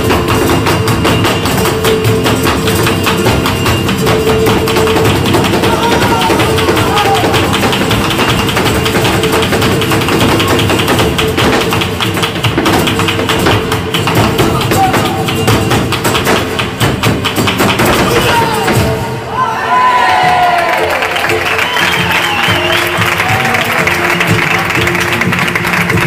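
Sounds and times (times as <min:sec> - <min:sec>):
hand-clapping: 0:00.0 - 0:18.6, 0:20.6 - 0:26.0
rapid stamping footwork: 0:00.0 - 0:19.0
flamenco guitar: 0:00.0 - 0:19.3, 0:20.4 - 0:26.0.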